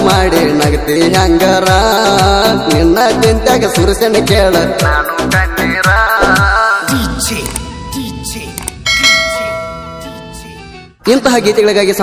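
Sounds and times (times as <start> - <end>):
bell-like chime ringing: 8.9 - 10.3.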